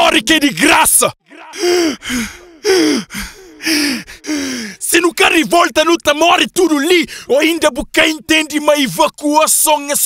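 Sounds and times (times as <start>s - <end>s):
person gasping cries: 1.4s - 4.8s.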